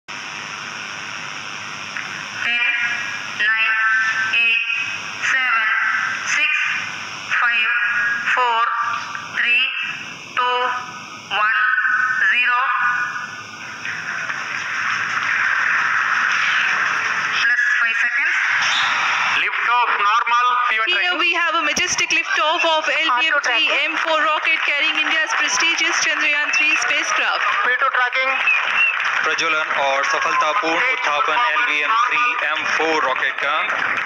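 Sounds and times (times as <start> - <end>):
voice counting over loudspeaker: 19.4 - 28.4, 29.2 - 33.7.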